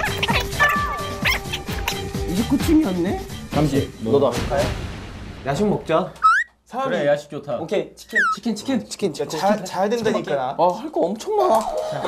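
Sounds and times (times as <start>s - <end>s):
background music: 0.0s - 6.2s, 11.4s - 12.0s.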